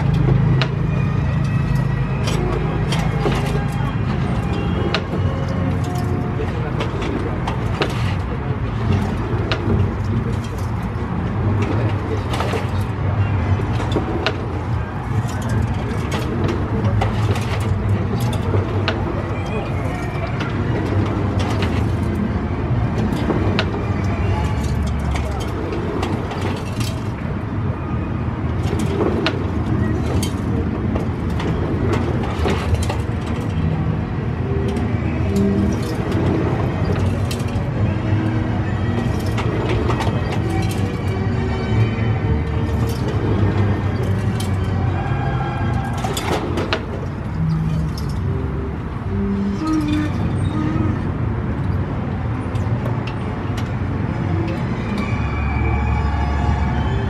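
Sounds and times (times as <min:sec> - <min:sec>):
distant indistinct voices: 0:00.0 - 0:57.0.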